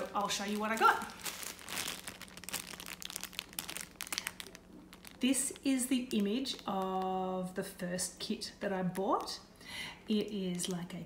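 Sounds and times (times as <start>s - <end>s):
plastic bag crinkling: 0.0s - 7.4s.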